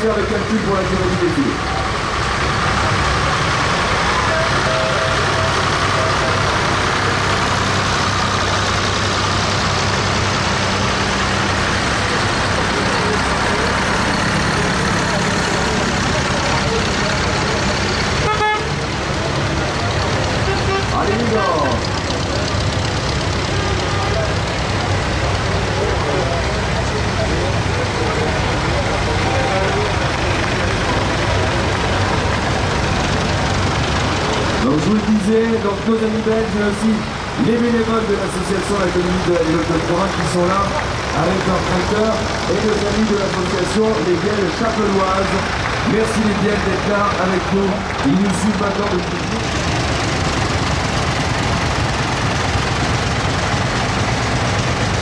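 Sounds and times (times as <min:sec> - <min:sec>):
crowd chatter: 0:00.0 - 0:55.0
tractor engines droning: 0:00.0 - 0:55.0.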